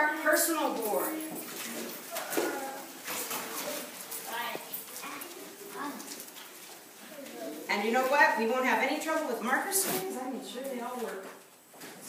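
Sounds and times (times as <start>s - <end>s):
young children murmuring: 1.8s - 6.4s, 7.0s - 7.7s.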